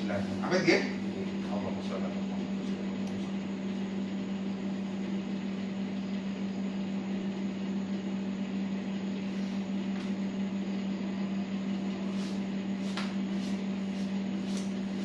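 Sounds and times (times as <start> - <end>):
steady low appliance hum: 0.0 - 15.0.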